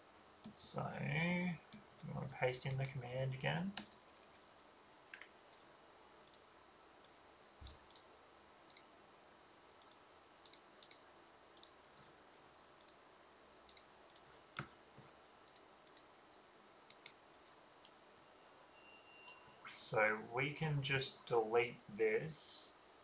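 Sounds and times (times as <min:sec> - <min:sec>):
computer keyboard and mouse clicks: 0:03.8 - 0:04.4, 0:05.0 - 0:08.1, 0:08.7 - 0:08.9, 0:09.8 - 0:11.0, 0:11.6 - 0:11.8, 0:12.8 - 0:13.0, 0:13.7 - 0:14.8, 0:15.4 - 0:16.1, 0:16.9 - 0:18.1.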